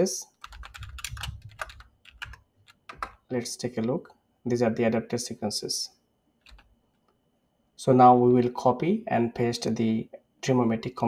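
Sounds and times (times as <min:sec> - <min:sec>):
computer keyboard typing: 0:00.4 - 0:03.2, 0:06.4 - 0:06.7.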